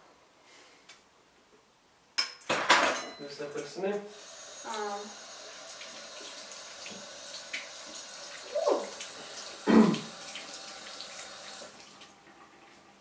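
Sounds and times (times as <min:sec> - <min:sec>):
tap running into a sink: 0:05.8 - 0:11.8.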